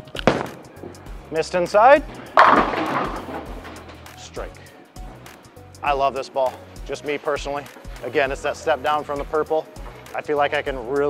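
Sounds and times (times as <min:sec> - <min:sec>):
bowling ball crashing into pins: 0:02.0 - 0:04.2
pins clattering: 0:02.1 - 0:04.2.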